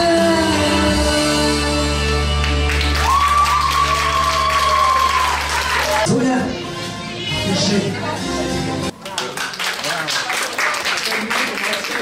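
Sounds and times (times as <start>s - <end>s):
audience applauding and cheering: 2.4s - 6.1s, 8.9s - 12.0s
long high-pitched cheer: 2.8s - 6.1s.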